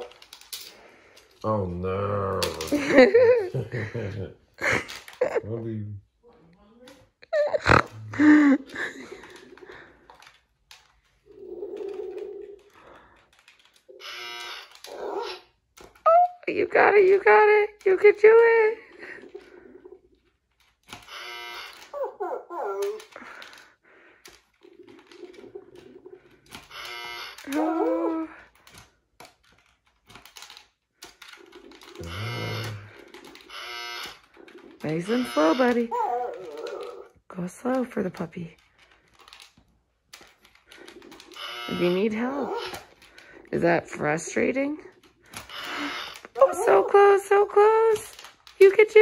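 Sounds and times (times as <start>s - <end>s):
plastic clicks: 0.0s - 1.4s, 4.6s - 5.4s, 7.7s - 21.9s, 22.8s - 43.5s, 44.9s - 49.0s
electronic error buzzer: 14.0s - 14.7s, 21.0s - 21.8s, 26.7s - 27.4s, 32.0s - 32.9s, 33.5s - 34.2s, 35.1s - 35.8s, 41.4s - 42.0s, 45.5s - 46.2s.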